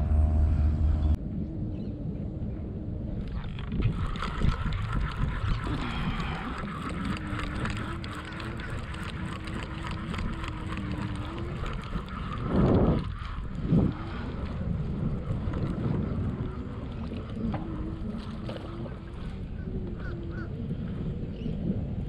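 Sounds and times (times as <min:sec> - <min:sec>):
faint steady drone: 0:00.0 - 0:14.7
wind buffeting microphone: 0:00.0 - 0:22.0.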